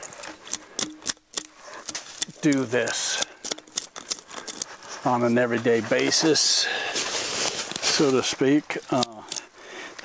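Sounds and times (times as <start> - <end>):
twigs snapping and cracking: 0.0 - 4.8, 6.9 - 10.0.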